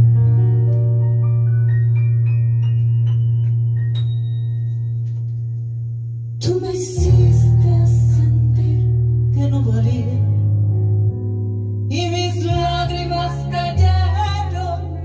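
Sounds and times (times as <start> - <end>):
deep bass note: 0.0 - 15.0
held keyboard chord: 0.0 - 15.0.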